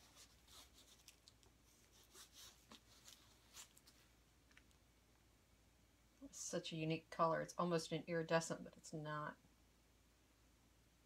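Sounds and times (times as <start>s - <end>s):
gloved hands rustling on canvas: 0.0s - 4.2s.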